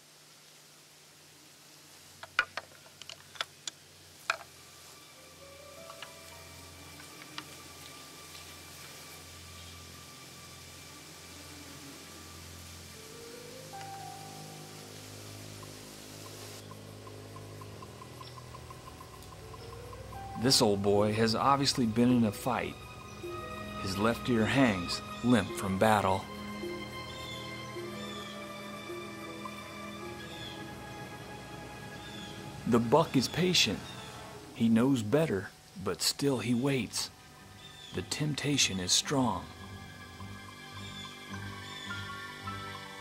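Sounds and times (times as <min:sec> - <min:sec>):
faint background music: 0:03.5 - 0:43.0.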